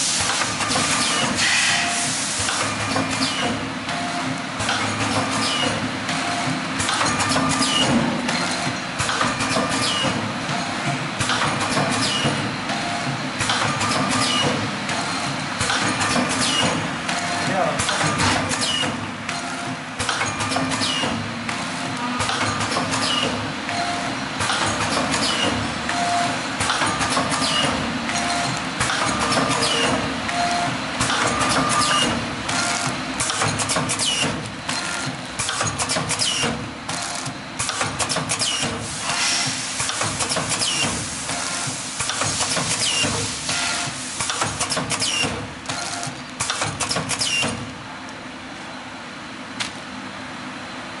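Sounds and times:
packing machine running: 0.0 - 48.1
steady machine noise: 0.0 - 48.5
sharp machine clicks: 31.0 - 47.6.

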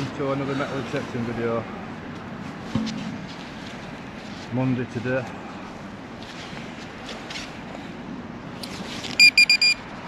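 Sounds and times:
metal detector beeping: 9.2 - 9.9.

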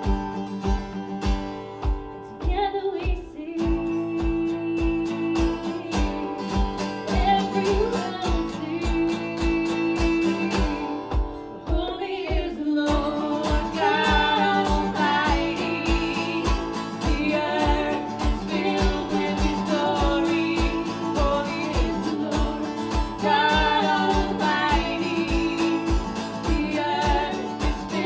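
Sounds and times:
strummed acoustic guitar: 0.0 - 28.0
woman singing: 2.0 - 28.0.

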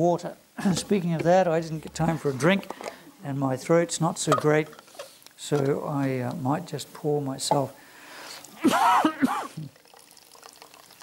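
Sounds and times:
water trickling into a glass: 9.6 - 11.0.

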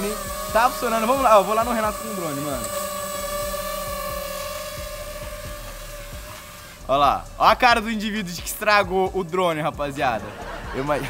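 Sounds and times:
drone propellers whining: 0.0 - 10.8.

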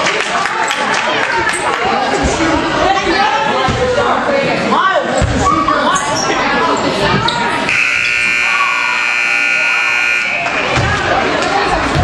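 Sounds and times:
scoreboard buzzer: 7.7 - 10.5.

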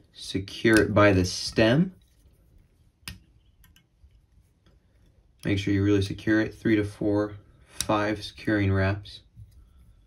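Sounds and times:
faint clicks and ticks: 2.0 - 5.6.

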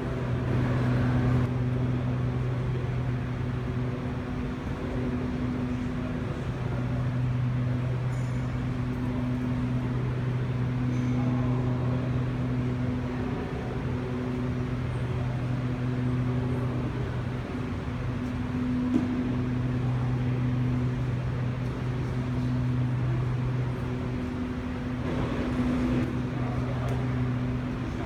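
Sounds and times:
low machine hum: 0.0 - 28.0.

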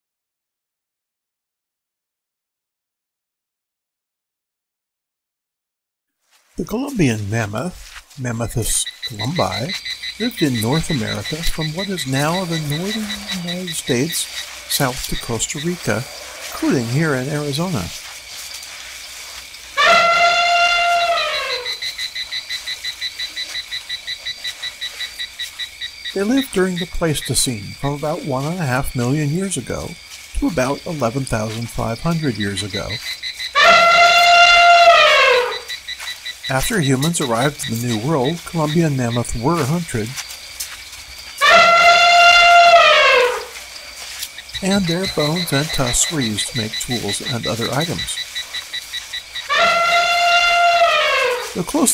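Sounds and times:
high insect chirping: 6.2 - 51.9
elephant trumpeting: 9.0 - 18.0, 19.7 - 23.5, 33.5 - 35.8, 41.4 - 43.6, 49.1 - 51.9.

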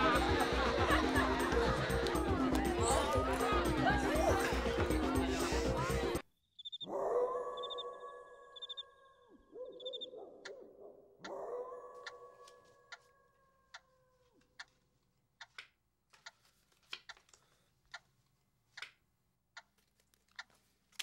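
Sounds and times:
dog howling: 6.8 - 8.6.

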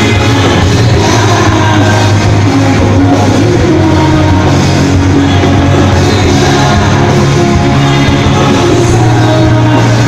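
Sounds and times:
rock band playing loudly: 0.0 - 10.0.

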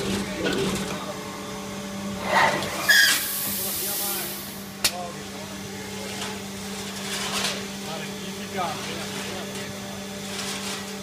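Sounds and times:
machine electric hum: 0.0 - 11.0
hiss: 2.3 - 4.6.

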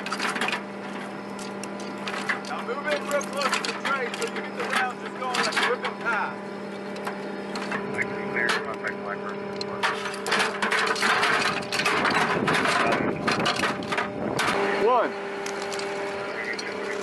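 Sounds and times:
steady low hum: 0.0 - 17.0
ammunition belt clinking and rattling: 15.4 - 15.9.

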